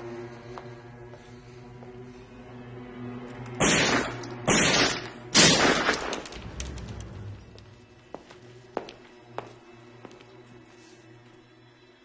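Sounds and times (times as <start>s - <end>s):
low steady drone: 0.0s - 12.0s
gunshots with echoing tail: 3.6s - 6.4s.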